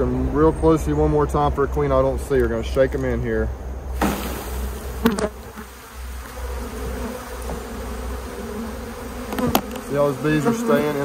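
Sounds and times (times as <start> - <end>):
honeybees buzzing: 3.8 - 11.0.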